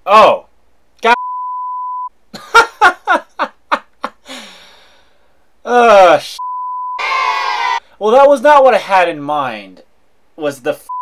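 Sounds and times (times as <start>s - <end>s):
censor bleep: 1.2s - 2.1s, 6.4s - 7.0s.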